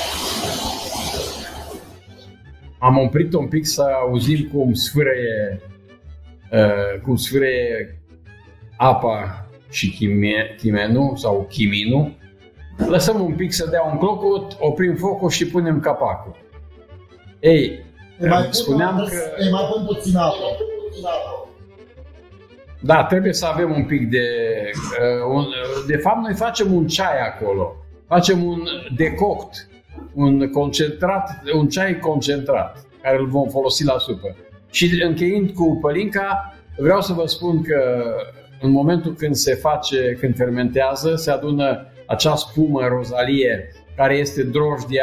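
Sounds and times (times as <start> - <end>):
water sizzling in hot pan: 0.0 - 2.0
faint background music: 0.0 - 45.0
man speaking: 2.8 - 5.6, 6.5 - 7.9, 8.8 - 12.2, 12.8 - 16.4, 17.4 - 21.1, 22.8 - 45.0.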